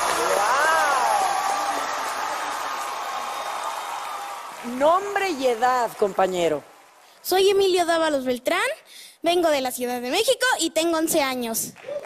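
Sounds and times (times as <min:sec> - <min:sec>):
audience applause: 0:00.0 - 0:07.2, 0:11.8 - 0:12.0.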